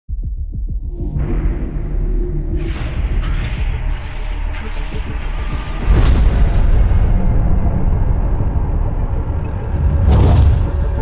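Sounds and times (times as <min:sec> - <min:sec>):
explosion boom: 0:09.7 - 0:11.0.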